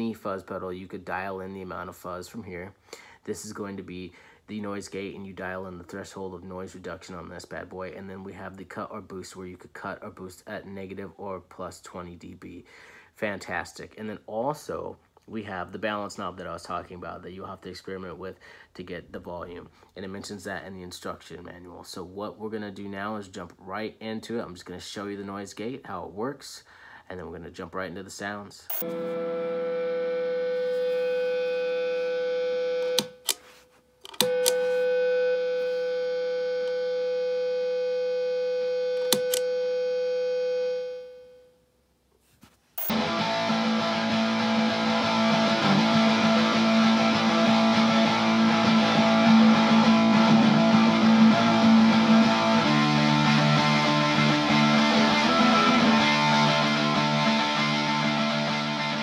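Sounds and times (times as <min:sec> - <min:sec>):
electric guitar feedback: 0:28.7 - 0:33.3, 0:34.2 - 0:41.4, 0:42.8 - 0:59.0
fuzz-distorted electric guitar loop: 0:28.7 - 0:33.3, 0:34.2 - 0:41.0, 0:42.8 - 0:59.0.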